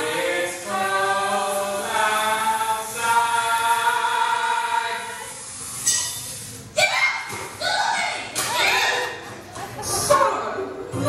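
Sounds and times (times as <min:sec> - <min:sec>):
stage song: 0:00.0 - 0:05.6
voices shouting and whooping: 0:06.8 - 0:09.3.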